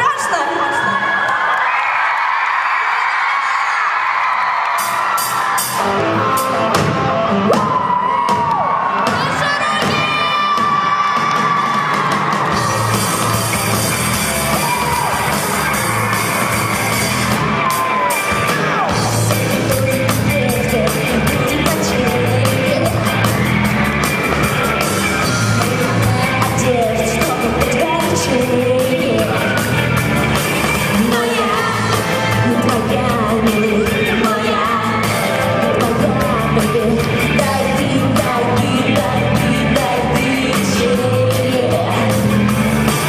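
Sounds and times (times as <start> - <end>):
audience screaming and cheering: 0.0 - 43.0
live rock band playing: 4.7 - 43.0.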